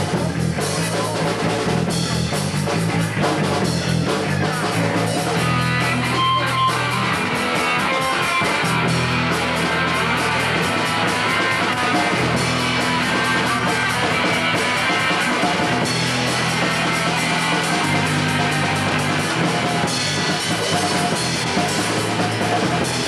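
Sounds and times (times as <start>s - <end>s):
bass line: 0.0s - 23.0s
drum kit: 0.0s - 23.0s
electric guitar: 0.0s - 23.0s.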